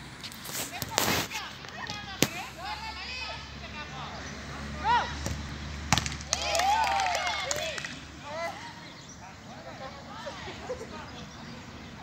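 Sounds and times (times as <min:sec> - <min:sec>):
players calling and shouting: 0:00.7 - 0:12.0
football being kicked: 0:05.2 - 0:06.3.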